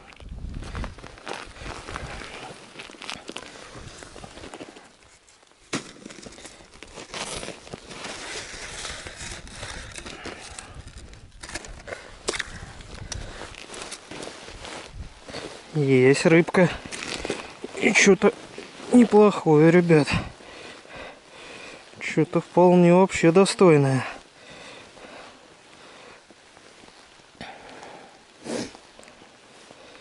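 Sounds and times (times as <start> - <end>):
rustling handling noise: 0.0 - 27.3.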